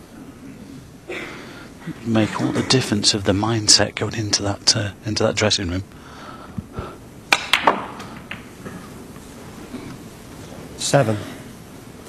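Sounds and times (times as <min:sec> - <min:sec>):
cue tip striking ball: 0:07.3 - 0:08.9
snooker balls clicking: 0:07.3 - 0:09.2.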